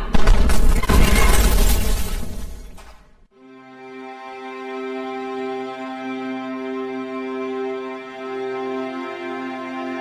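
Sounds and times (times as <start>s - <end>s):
explosion crash with shattering debris: 0.0s - 3.2s.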